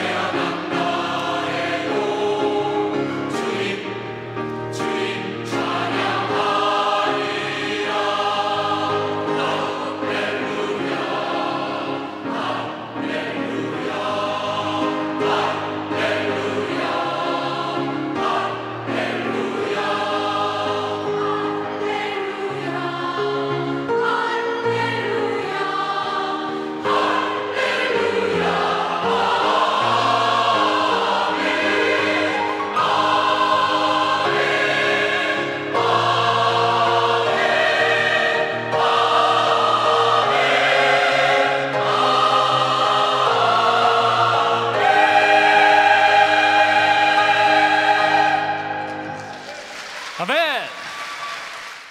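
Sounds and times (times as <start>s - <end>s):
mixed choir singing: 0.0s - 49.6s.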